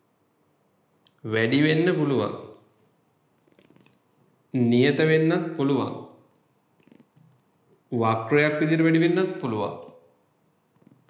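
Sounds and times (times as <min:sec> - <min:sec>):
man's voice: 0:01.3 - 0:02.4, 0:04.6 - 0:06.0, 0:08.0 - 0:09.8.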